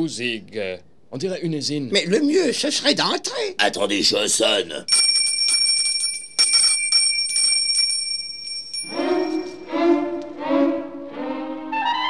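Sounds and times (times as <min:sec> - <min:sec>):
doorbell ringing: 0:04.9 - 0:10.1
music interlude of held notes: 0:08.9 - 0:12.0.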